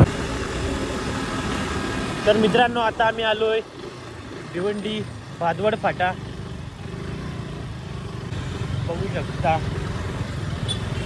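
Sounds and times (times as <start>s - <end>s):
motorcycle engine rumbling: 0.0s - 11.0s
road noise: 0.0s - 11.0s.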